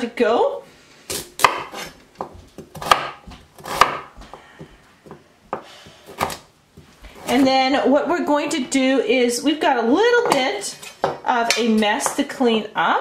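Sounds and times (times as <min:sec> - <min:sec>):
knife chopping on wooden board: 0:01.4 - 0:04.4, 0:05.1 - 0:06.4.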